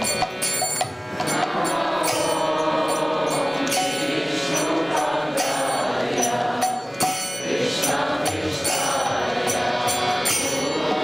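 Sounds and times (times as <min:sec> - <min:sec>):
light percussion: 0:00.0 - 0:11.0
voices chanting in held notes: 0:01.1 - 0:11.0.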